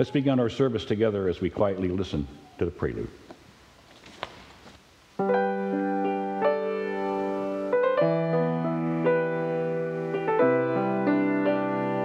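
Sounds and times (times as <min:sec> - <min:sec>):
held keyboard chord: 0:05.2 - 0:12.0.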